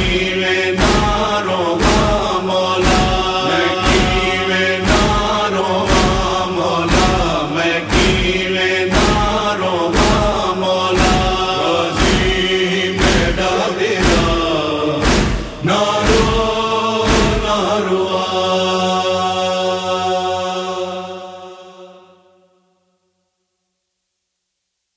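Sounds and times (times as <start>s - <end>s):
chest-beating strikes: 0.0s - 17.7s
male voices chanting: 0.0s - 22.1s.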